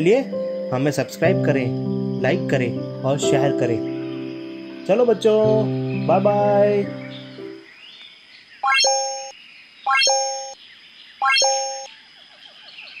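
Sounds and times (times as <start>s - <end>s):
background music: 0.0s - 7.6s
electronic chime: 8.6s - 9.3s, 9.9s - 10.6s, 11.2s - 11.9s.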